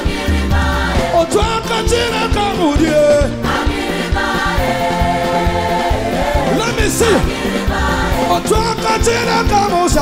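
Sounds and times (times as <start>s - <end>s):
band playing: 0.0s - 10.0s
choir singing held notes: 0.0s - 10.0s
drums keeping steady beat: 0.0s - 10.0s.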